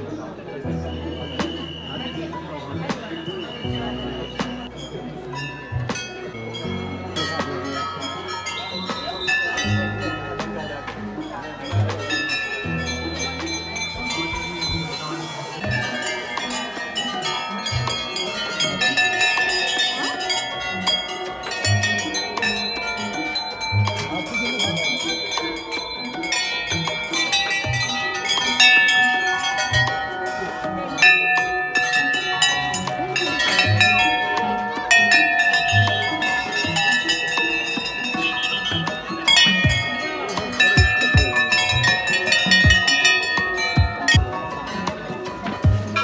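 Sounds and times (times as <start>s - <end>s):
brass bells ringing: 3.3s - 46.0s.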